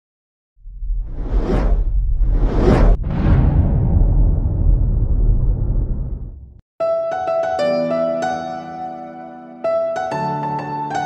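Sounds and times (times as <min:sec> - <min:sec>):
deep steady rumble: 0:00.6 - 0:06.6
whooshes: 0:00.6 - 0:06.6.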